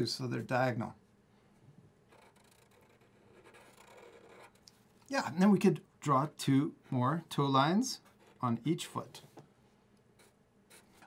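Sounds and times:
marker scratching on paper: 2.1 - 4.6.

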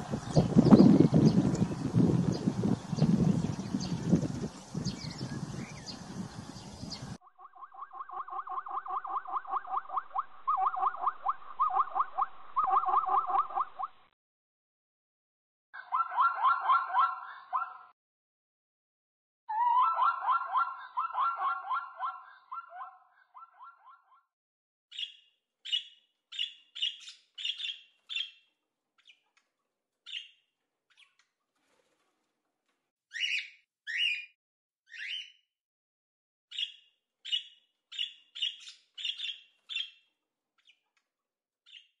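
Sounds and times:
budgerigar chirps: 7.4 - 13.9, 36.5 - 40.0.

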